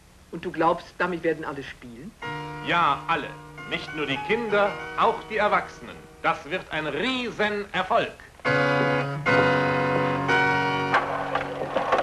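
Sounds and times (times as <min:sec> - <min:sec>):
held music chords: 0:02.2 - 0:07.7, 0:08.4 - 0:11.6.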